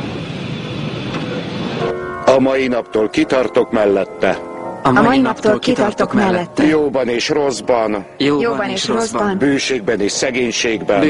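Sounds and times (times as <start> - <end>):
held music chord: 1.8 - 11.0.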